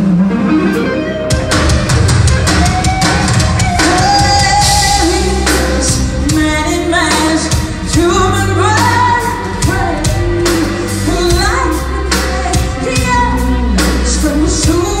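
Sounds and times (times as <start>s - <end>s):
bass guitar: 0.0s - 15.0s
electric guitar: 0.0s - 15.0s
drum kit steady beat: 1.3s - 15.0s
woman singing: 3.7s - 15.0s.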